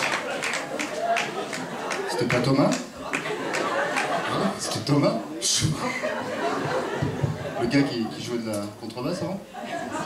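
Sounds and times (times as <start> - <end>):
man talking over microphone: 2.1 - 2.9, 4.2 - 6.0, 7.5 - 9.5.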